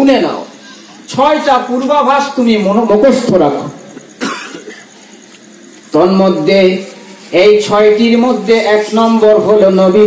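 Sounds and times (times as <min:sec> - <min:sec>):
man coughing: 0:04.2 - 0:04.9.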